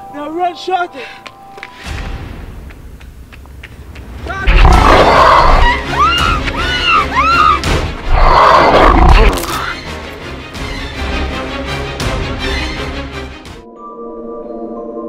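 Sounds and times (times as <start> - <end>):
deep rumble: 4.4 - 5.9
monster roars: 4.5 - 5.8, 8.1 - 9.8.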